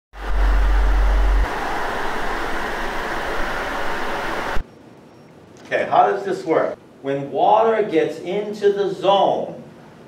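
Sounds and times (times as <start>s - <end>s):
deep rumble: 0.1s - 4.6s
water rushing from relief valve: 0.2s - 4.6s.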